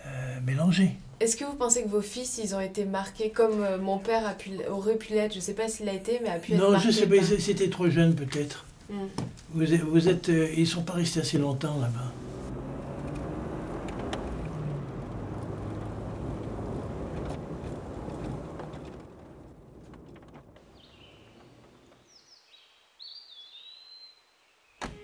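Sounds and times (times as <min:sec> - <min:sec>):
road noise: 0:06.6 - 0:22.2
car engine hum: 0:09.4 - 0:22.0
faint bird chirps: 0:20.7 - 0:25.0.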